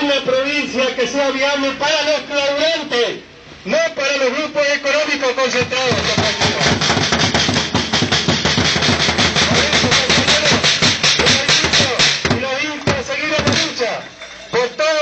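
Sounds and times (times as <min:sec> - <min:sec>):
voices: 0:00.0 - 0:07.0, 0:09.1 - 0:15.0
marching drums beating: 0:05.4 - 0:14.2.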